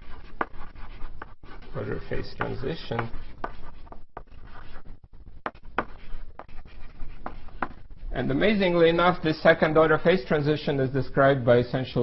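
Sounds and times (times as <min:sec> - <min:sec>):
chalk clicks: 0:00.0 - 0:04.8
chalk scratching on blackboard: 0:00.0 - 0:08.0.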